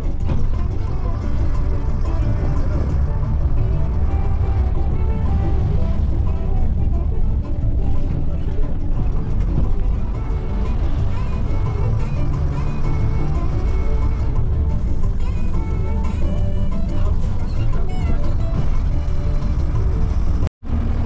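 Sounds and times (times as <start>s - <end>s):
music playing: 0.0s - 20.5s
vehicle engine and tyres rumbling: 0.0s - 21.0s.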